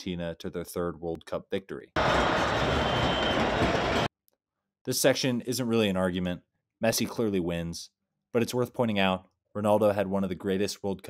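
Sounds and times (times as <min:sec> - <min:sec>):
crowd cheering and shouting: 0:02.0 - 0:04.1.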